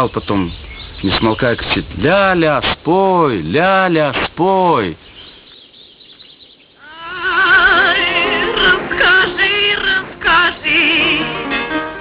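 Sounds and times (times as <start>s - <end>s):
woman singing with vibrato: 6.8s - 11.8s.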